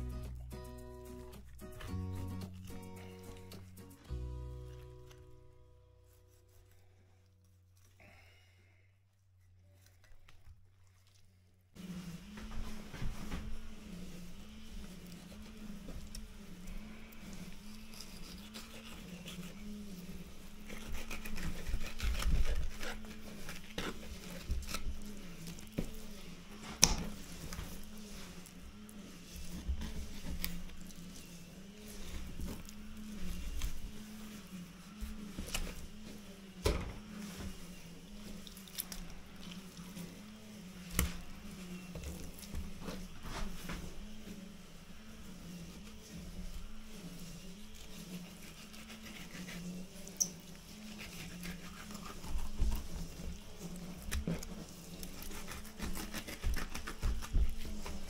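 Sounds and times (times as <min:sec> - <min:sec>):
knife squishing through fish flesh: 0:15.0 - 0:34.3, 0:38.2 - 0:41.4, 0:47.6 - 0:58.0.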